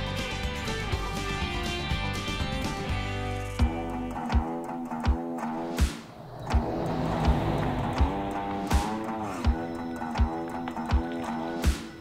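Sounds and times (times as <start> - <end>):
background music with steady beat: 0.0 - 12.0
pickup truck driving past: 5.6 - 10.0.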